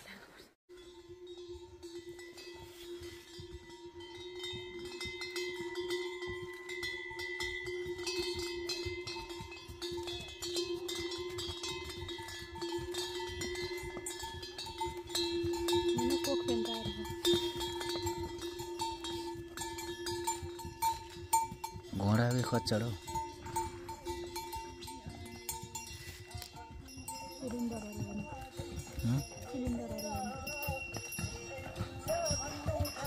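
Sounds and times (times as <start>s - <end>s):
bells on pack mules ringing: 0.7s - 33.0s
jangling and clatter: 3.3s - 33.0s.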